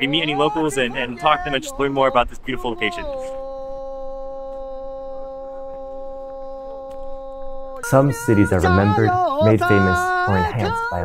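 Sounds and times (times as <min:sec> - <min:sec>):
man singing folk song: 0:00.0 - 0:03.6, 0:07.8 - 0:11.0.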